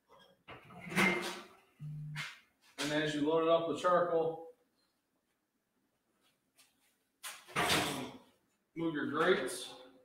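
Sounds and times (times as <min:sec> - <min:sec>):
man humming low: 0:01.8 - 0:02.2.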